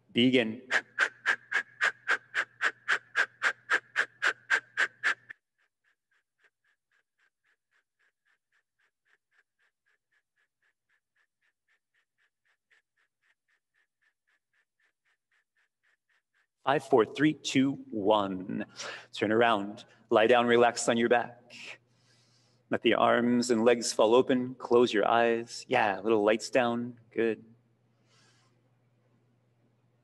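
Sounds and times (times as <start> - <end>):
forceful exhales through mouth: 0.7 - 5.3.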